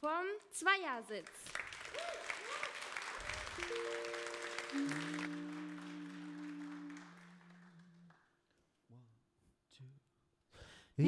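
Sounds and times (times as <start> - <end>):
audience applause: 1.5 - 8.2
electric keyboard chord: 3.6 - 7.0.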